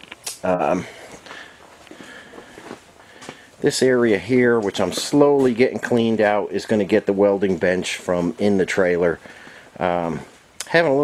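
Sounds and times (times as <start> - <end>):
footsteps on concrete: 0.9 - 3.5.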